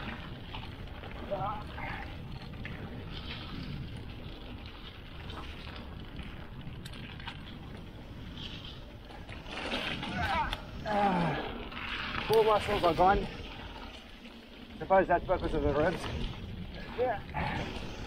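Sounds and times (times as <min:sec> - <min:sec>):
wind rush on microphone: 0:00.0 - 0:14.1, 0:14.8 - 0:18.0
bike clicks: 0:00.0 - 0:18.0.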